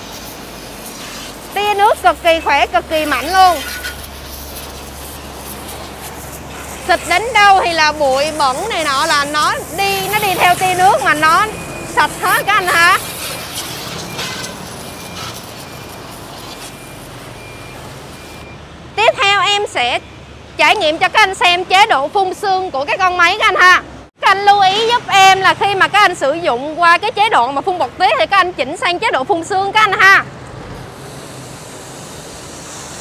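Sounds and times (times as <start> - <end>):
pressure washer jet hissing: 0.0 - 18.4, 30.9 - 33.0.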